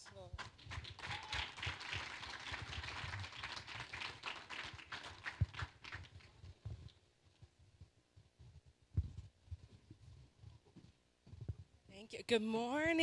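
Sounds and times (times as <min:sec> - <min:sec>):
scattered clapping: 0:00.0 - 0:06.4.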